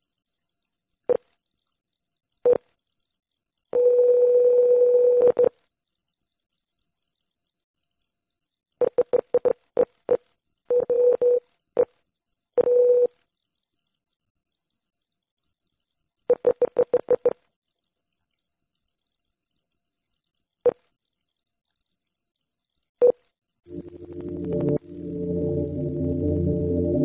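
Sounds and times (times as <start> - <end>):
steady electronic tone: 23.7 - 27.0.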